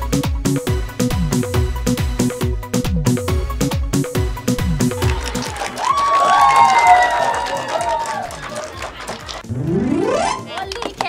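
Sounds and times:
background music with a beat: 0:00.0 - 0:07.1
group clapping and cheering: 0:04.6 - 0:11.0
voice rising and falling: 0:09.5 - 0:10.5.

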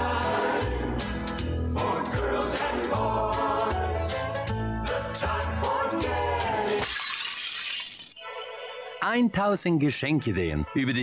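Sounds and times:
christmas song singing: 0:00.0 - 0:07.3, 0:08.2 - 0:11.0
porcelain vase shattering: 0:06.8 - 0:08.2.

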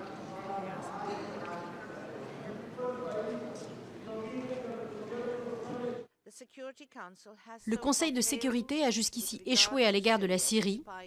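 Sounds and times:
murmur of many voices: 0:00.0 - 0:06.1.

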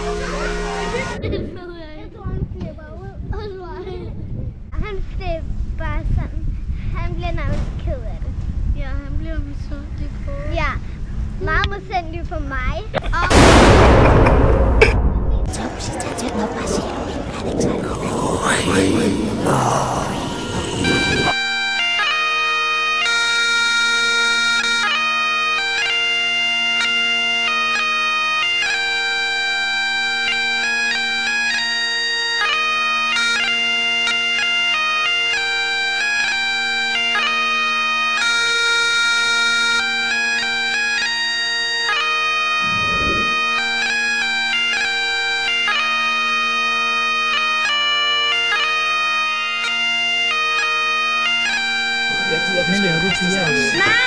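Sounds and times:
bagpipe chanter melody: 0:00.0 - 0:01.2, 0:20.3 - 0:42.7, 0:43.3 - 0:54.0
bagpipe drone: 0:00.0 - 0:01.6, 0:15.6 - 0:54.0.

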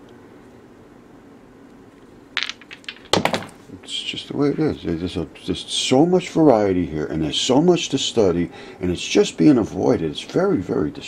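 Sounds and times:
stones clicking together: 0:02.4 - 0:03.6.

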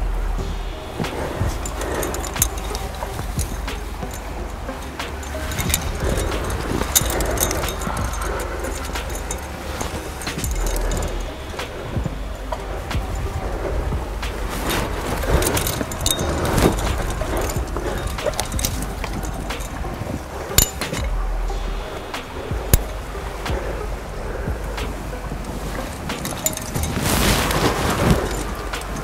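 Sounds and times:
low rumble: 0:00.0 - 0:29.0
music: 0:00.0 - 0:29.0.

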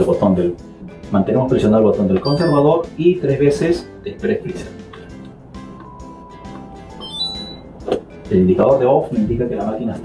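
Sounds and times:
background music: 0:00.0 - 0:10.0
electronic beeps: 0:02.2 - 0:02.8, 0:06.9 - 0:07.8.

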